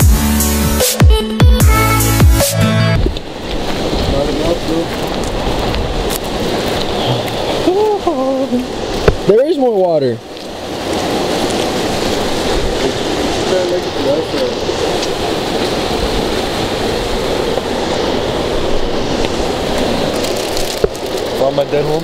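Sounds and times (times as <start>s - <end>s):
creek water rushing: 0.0s - 22.0s.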